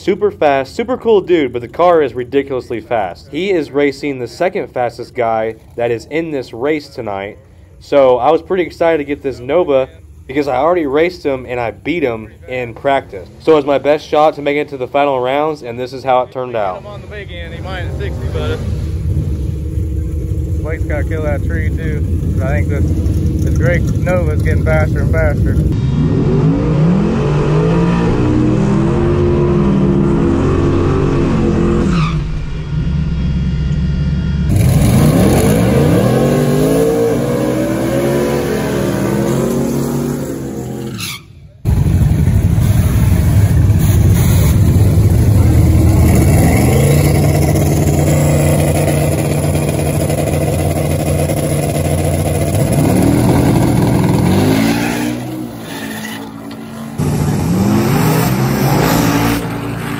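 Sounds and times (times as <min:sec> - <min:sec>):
car engine revving hard: 0:17.7 - 0:31.9, 0:34.4 - 0:40.9, 0:43.2 - 0:55.7, 0:56.5 - 0:59.9.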